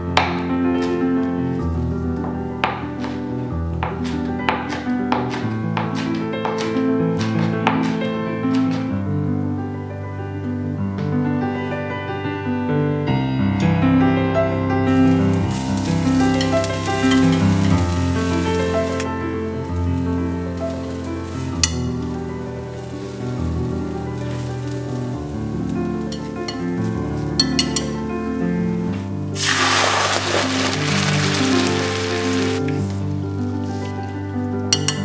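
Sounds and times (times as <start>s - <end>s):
piano background music: 0.0s - 35.0s
shallots sizzling in hot oil: 14.9s - 35.0s
chopsticks clicking against pan: 27.4s - 28.0s.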